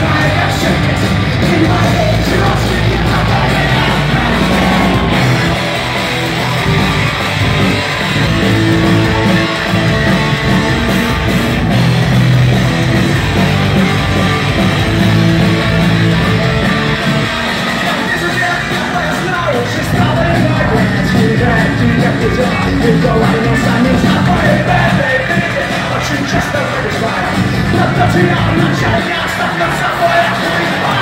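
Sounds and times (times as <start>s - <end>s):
electric guitars: 0.0s - 31.0s
live punk rock band: 0.0s - 31.0s.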